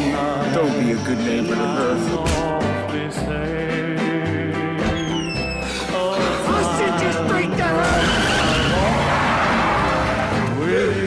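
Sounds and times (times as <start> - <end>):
car tyres squealing: 7.8 - 10.3.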